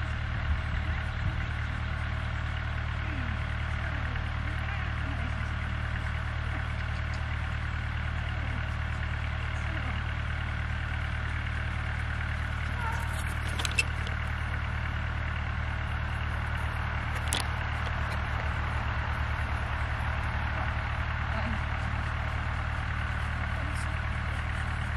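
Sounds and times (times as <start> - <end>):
low mechanical hum: 0.0 - 24.9.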